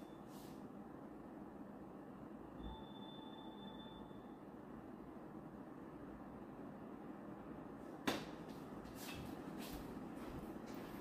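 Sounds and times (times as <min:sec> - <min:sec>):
thin high electronic tone: 0:02.5 - 0:04.5.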